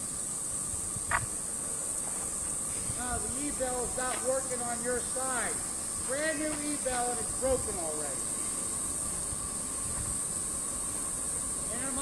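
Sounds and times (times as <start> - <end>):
constant high hiss: 0.0 - 12.0
low wind-like rumble: 0.0 - 12.0.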